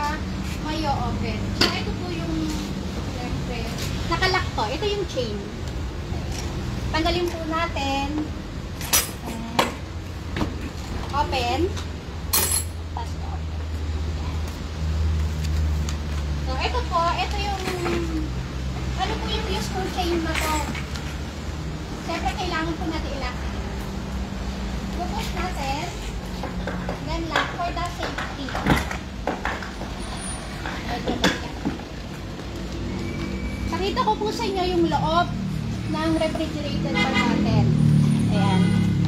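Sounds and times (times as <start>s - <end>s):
traffic rumble: 0.0s - 39.0s.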